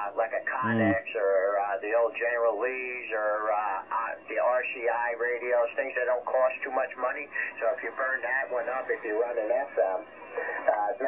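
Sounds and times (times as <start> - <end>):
man talking over radio: 0.3 - 1.6, 2.2 - 9.9.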